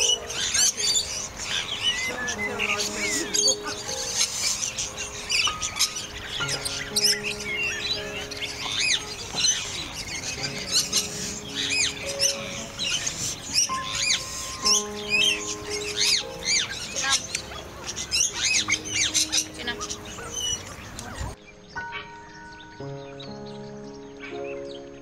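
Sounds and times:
birds chirping: 0.0 - 25.0
instrumental music: 0.0 - 25.0.

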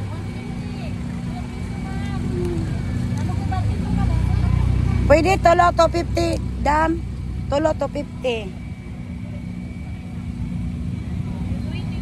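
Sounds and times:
motor vehicle engine running: 0.0 - 12.0.

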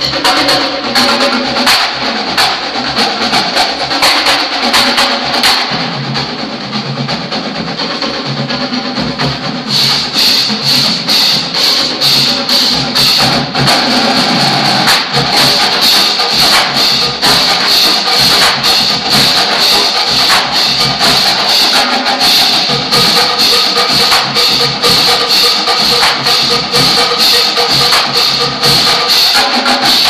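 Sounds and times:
drumline strokes: 0.0 - 30.0
marching band playing: 0.0 - 30.0.

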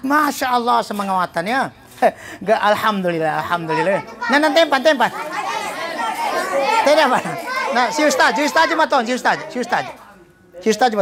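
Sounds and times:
boys chanting a name: 3.1 - 10.2.

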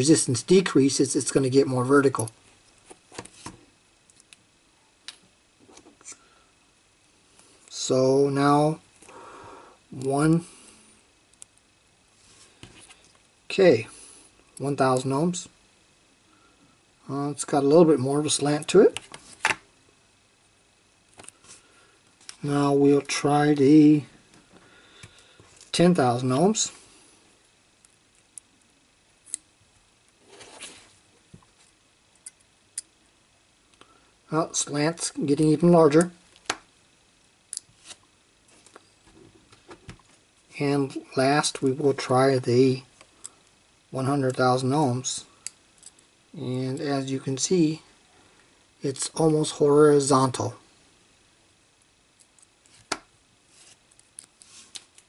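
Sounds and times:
soft rustle: 30.2 - 31.8, 52.6 - 55.0.

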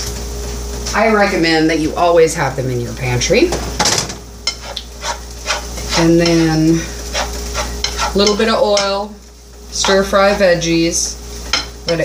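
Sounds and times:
spatula scraping in a pan: 4.4 - 9.0, 9.7 - 10.7.

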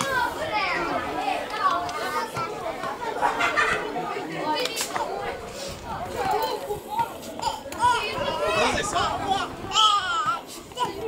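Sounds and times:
young footballers shouting: 7.0 - 11.0.

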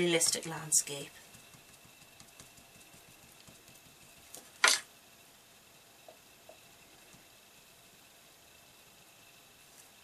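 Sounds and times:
marker nib tapping on acetate: 1.3 - 4.4.

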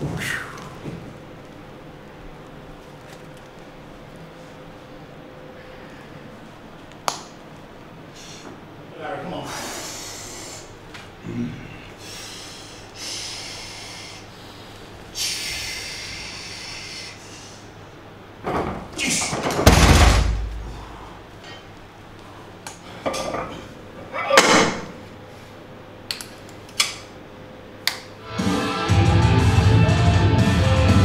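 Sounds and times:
sharp forceful breaths: 9.4 - 10.8, 11.9 - 17.8
barbell thudding onto floor: 19.4 - 20.6.

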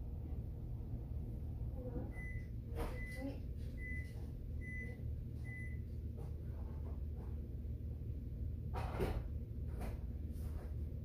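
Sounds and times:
appliance beeper high beeps: 2.1 - 3.2.

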